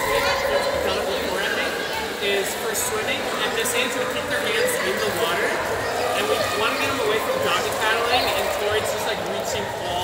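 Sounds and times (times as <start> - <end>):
indoor pool background wash: 0.0 - 10.0
man talking: 0.0 - 10.0.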